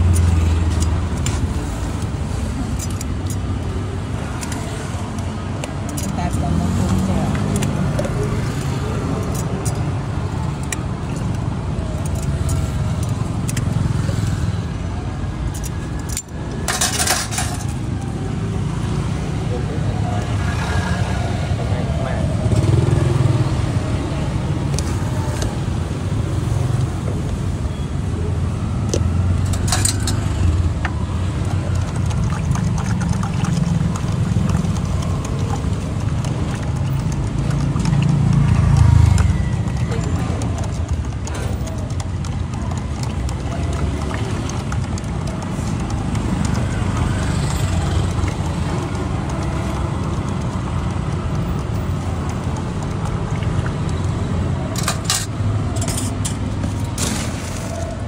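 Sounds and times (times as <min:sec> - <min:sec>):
road traffic rumble: 0:00.0 - 0:58.0.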